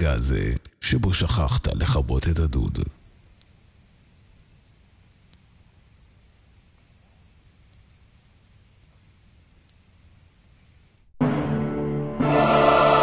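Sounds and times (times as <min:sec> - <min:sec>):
cricket chirping: 0:01.7 - 0:11.1.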